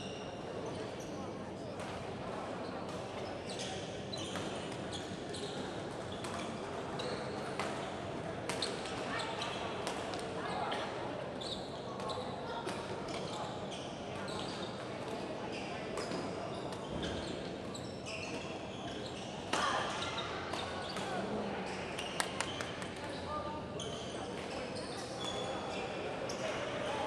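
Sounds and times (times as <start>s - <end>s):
voices in a large hall: 0.0s - 27.0s.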